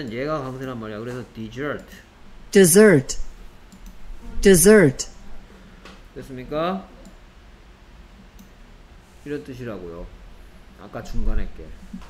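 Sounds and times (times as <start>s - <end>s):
low background hum: 0.0s - 12.0s
computer mouse click: 8.4s - 8.6s.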